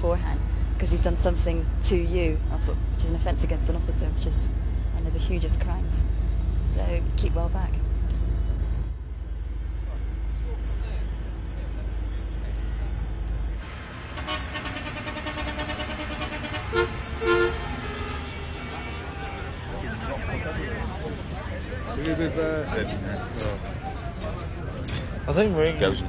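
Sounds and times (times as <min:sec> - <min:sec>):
voices: 0:00.0 - 0:07.8, 0:17.8 - 0:26.0
low street rumble: 0:00.0 - 0:26.0
car horns tooting: 0:14.2 - 0:21.0.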